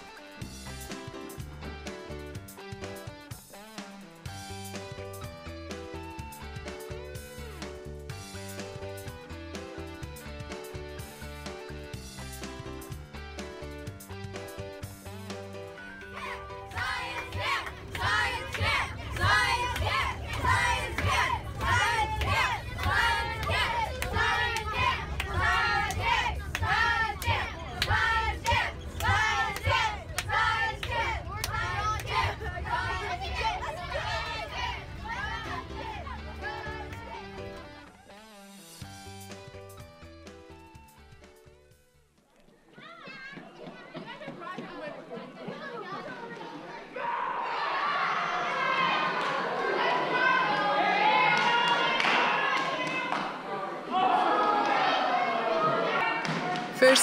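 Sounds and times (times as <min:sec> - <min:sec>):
children chanting rhythmically: 0:16.1 - 0:37.2
high voice sliding up and down: 0:56.8 - 0:57.0.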